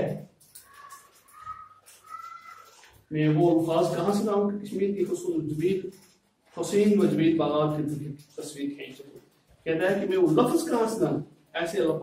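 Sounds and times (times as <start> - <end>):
drawn-out high animal calls: 0.6 - 2.9.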